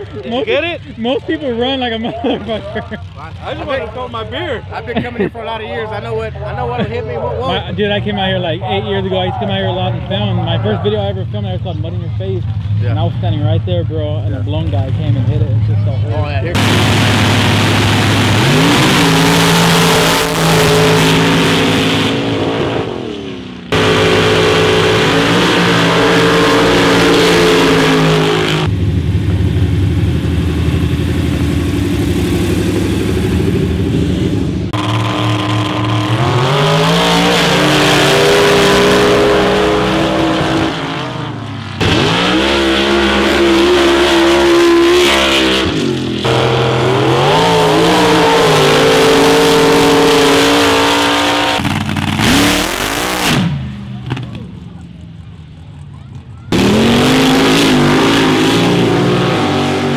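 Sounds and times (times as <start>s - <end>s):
engines revving at full throttle: 0.0s - 59.9s.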